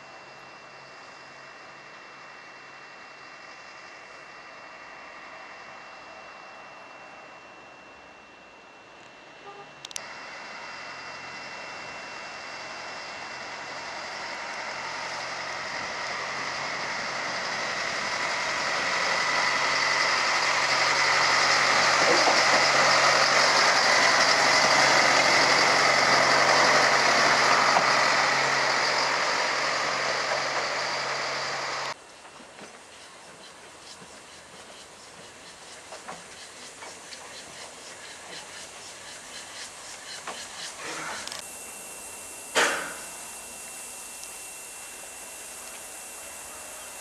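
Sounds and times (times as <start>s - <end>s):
diesel locomotive running: 0.0s - 47.0s.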